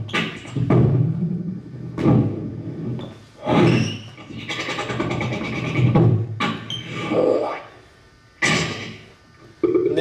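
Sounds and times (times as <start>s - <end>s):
beatboxing rattling buzz: 0.0s - 7.8s, 8.4s - 10.0s.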